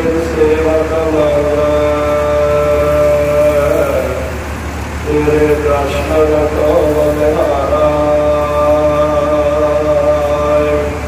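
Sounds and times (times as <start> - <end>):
man chanting long held notes: 0.0 - 11.0.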